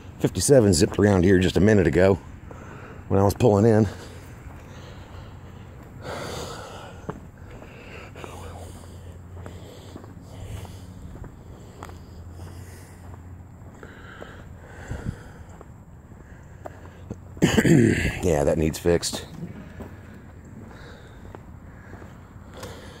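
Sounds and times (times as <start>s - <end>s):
faint footstep clicks: 0.0s - 23.0s
low steady hum: 0.0s - 23.0s
person breathing and sniffing: 4.0s - 15.5s.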